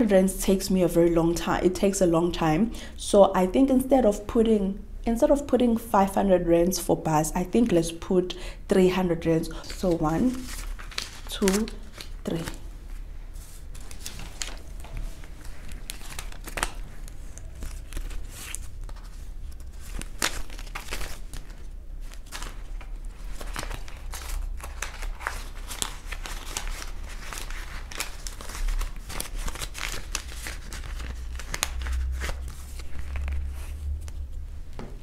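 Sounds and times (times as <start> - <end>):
banknotes rustling: 9.0 - 34.4
plastic pouch crinkling: 9.6 - 12.7, 13.6 - 33.5.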